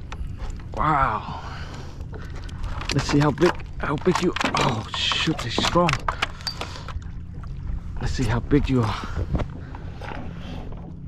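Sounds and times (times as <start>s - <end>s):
water and wind rumble: 0.0s - 11.0s.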